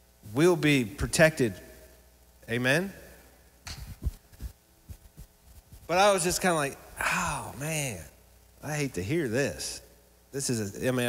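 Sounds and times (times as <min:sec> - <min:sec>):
soft low thumps: 0:03.7 - 0:05.9
man speaking: 0:05.9 - 0:09.8, 0:10.4 - 0:11.0.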